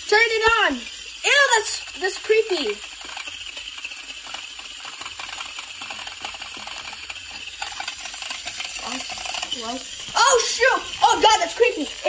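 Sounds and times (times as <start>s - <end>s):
robot toy buzzing rattle: 0.0s - 12.0s.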